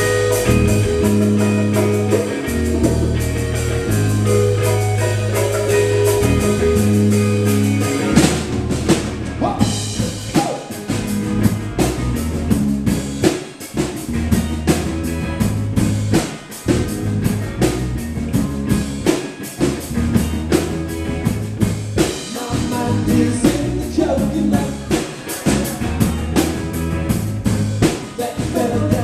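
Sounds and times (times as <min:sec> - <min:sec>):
amplified guitar: 0:00.0 - 0:29.0
bass guitar: 0:00.0 - 0:29.0
drum kit beat: 0:00.0 - 0:29.0.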